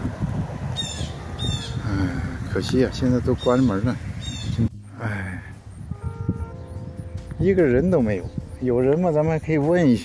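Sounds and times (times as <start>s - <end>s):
short high bird calls: 0.8s - 1.8s.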